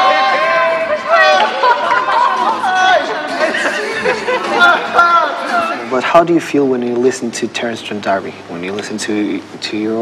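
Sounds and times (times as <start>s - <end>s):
group of voices chattering: 0.0s - 6.0s.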